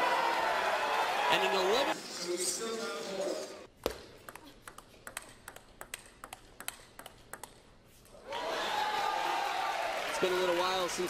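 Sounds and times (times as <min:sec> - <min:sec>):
table tennis ball hits: 0:03.8 - 0:07.6.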